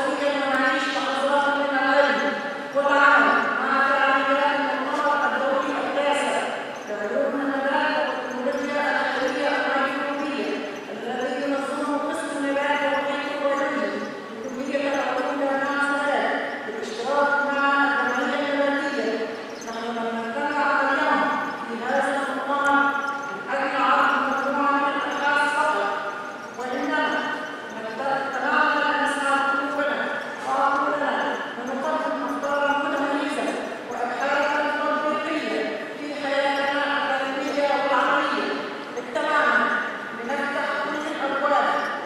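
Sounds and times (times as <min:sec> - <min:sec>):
woman speaking into a microphone: 0:00.0 - 0:42.0.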